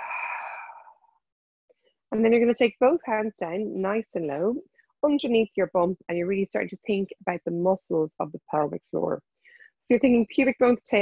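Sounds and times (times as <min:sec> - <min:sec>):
woman exhaling: 0:00.0 - 0:01.1.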